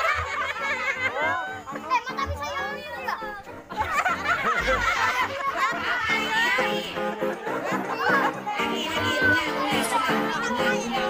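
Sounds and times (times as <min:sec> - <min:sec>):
background music: 0:00.0 - 0:11.0
children chattering and calling out: 0:00.0 - 0:11.0.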